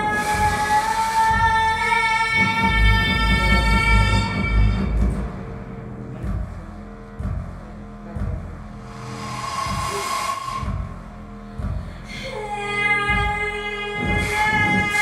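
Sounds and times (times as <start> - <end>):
deep rumble: 0.0 - 14.9
low thuds: 2.6 - 12.2
soft tone: 8.8 - 11.2
whistle-like high tone: 9.0 - 10.9.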